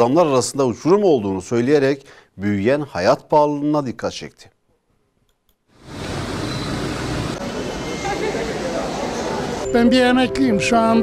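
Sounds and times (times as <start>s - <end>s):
outdoor street noise: 5.7s - 9.8s.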